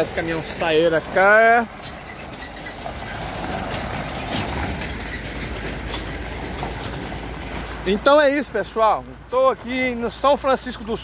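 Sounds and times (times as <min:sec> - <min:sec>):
empty trailer rattling: 0:00.0 - 0:11.0
truck engine rumble: 0:00.0 - 0:11.0.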